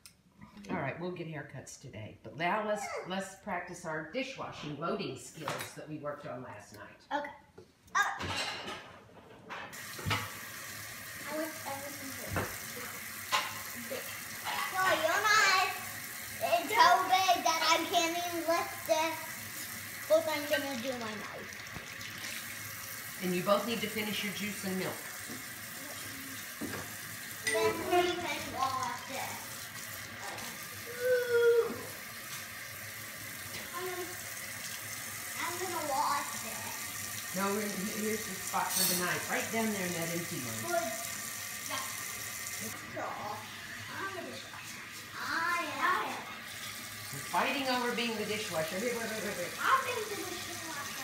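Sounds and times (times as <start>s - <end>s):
faucet running into sink: 9.7s - 51.0s.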